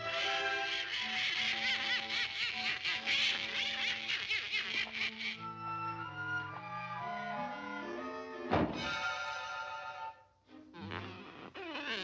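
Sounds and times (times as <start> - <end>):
raspy quacking cartoon laugh: 0.1 - 5.4
orchestral music: 5.4 - 10.7.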